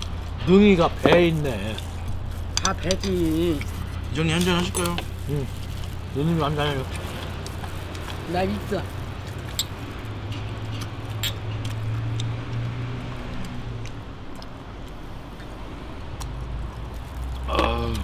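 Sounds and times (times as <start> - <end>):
tableware and glasses clicking: 10.8 - 11.6.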